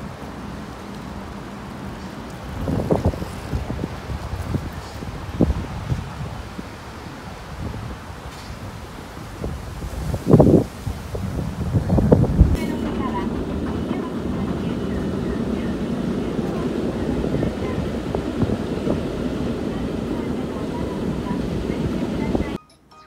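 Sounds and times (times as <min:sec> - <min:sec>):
wind buffeting microphone: 0:01.1 - 0:22.6.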